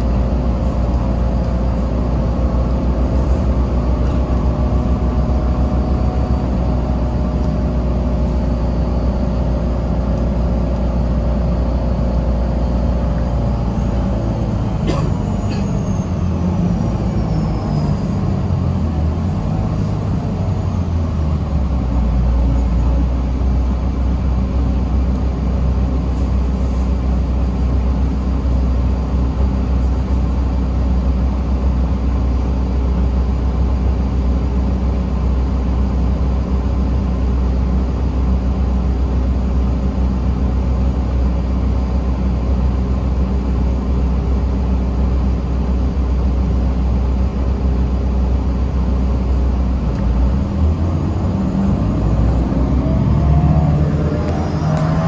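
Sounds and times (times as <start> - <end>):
bus engine idling: 0.0 - 55.0.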